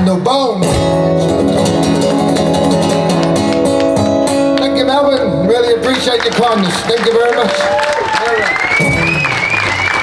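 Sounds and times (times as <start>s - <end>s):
acoustic guitar strumming blues: 0.1s - 5.4s.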